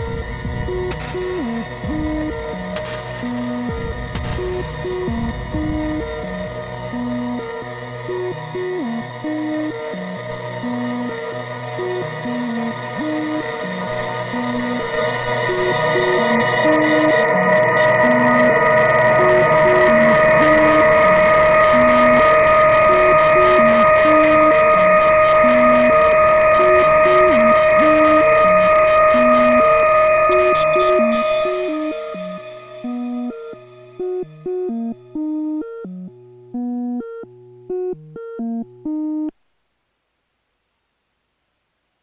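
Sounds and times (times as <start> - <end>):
sequenced synth bass line: 0.0 - 39.3
synthesizer drone: 0.0 - 39.3.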